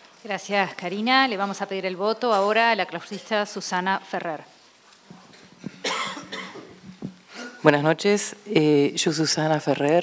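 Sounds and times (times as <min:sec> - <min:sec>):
microphone handling knock: 0:05.1 - 0:07.2
person coughing: 0:05.8 - 0:07.7.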